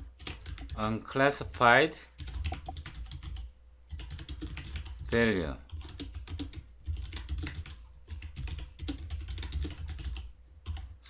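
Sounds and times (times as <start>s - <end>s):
keyboard keystroke clicks: 2.4s - 2.9s.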